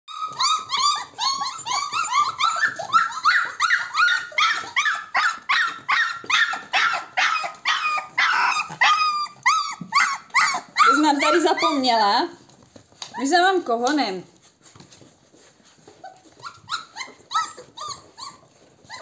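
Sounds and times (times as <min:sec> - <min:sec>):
puppies whining and crying: 0:00.1 - 0:13.4, 0:14.4 - 0:19.0.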